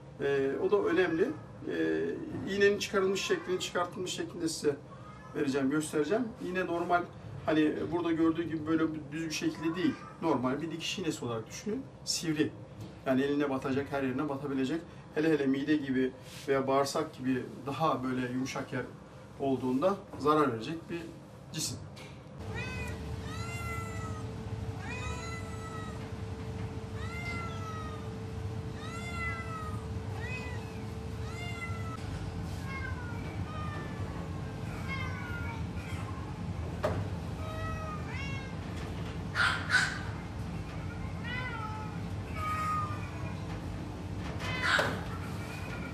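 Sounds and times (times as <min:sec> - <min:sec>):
cat meowing: 0:04.9 - 0:05.4, 0:22.4 - 0:26.1, 0:26.9 - 0:36.5, 0:37.4 - 0:38.6, 0:40.7 - 0:43.5.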